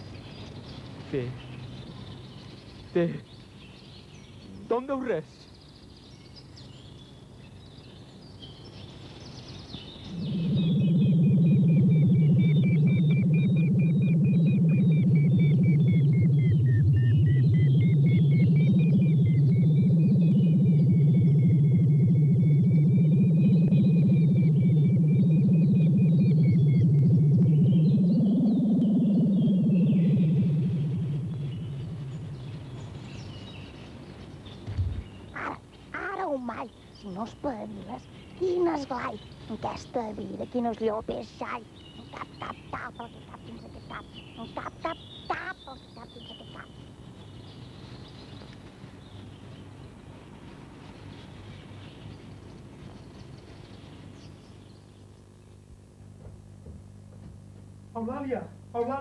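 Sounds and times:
synthesizer drone: 9.8s - 47.4s.

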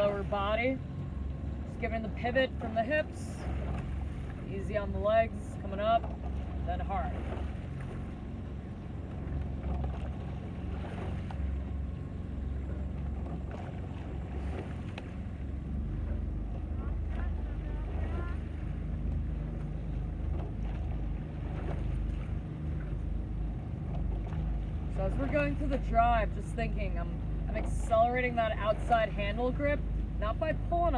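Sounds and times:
motorboat engine rumbling: 0.0s - 30.9s.

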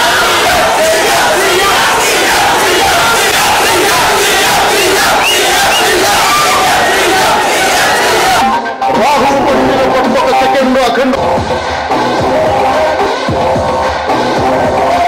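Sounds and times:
crowd of men shouting and cheering: 0.0s - 15.0s.

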